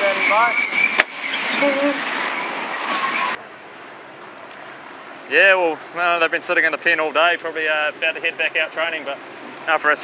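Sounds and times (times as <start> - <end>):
rushing wind and water: 0.0 - 10.0.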